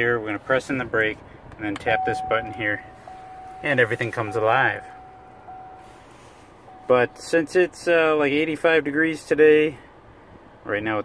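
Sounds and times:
car engine idling: 0.0 - 8.8
thin steady tone: 1.9 - 7.6.

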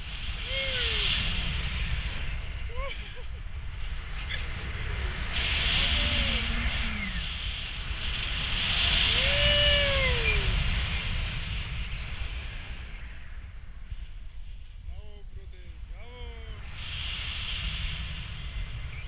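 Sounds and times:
wind rushing over microphone: 0.0 - 19.0.

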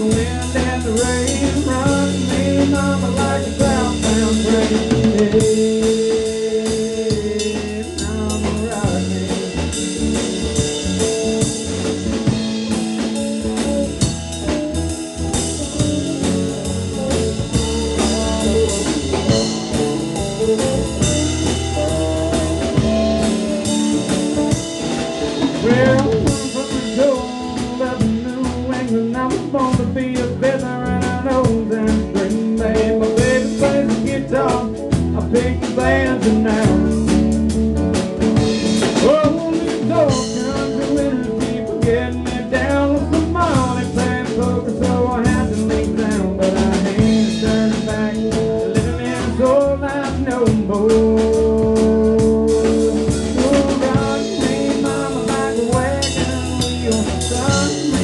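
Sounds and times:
wavering lead line: 0.0 - 29.2
drum kit beat: 0.0 - 58.0
guitar: 0.0 - 58.0.

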